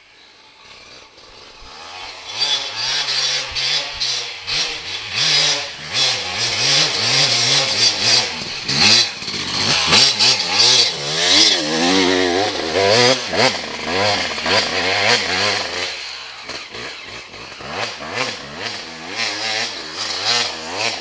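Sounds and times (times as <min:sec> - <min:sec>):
dirt bike engines revving: 0:00.0 - 0:21.0.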